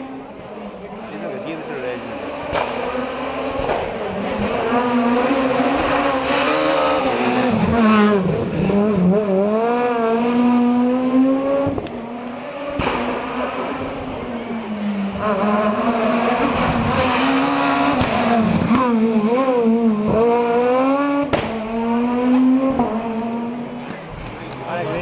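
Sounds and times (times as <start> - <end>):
rally car engine revving: 0.0 - 25.0.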